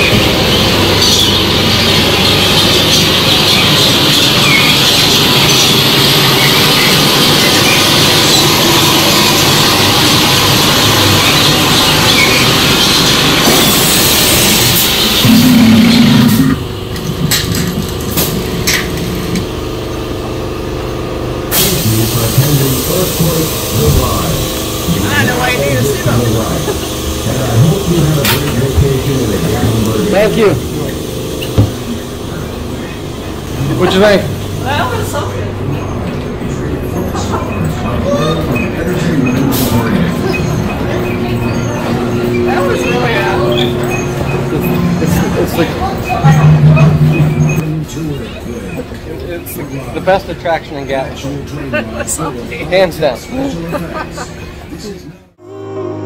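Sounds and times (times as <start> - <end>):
voices: 0.0 - 17.1, 21.5 - 55.4
brief low hum: 15.2 - 18.5, 39.0 - 47.9.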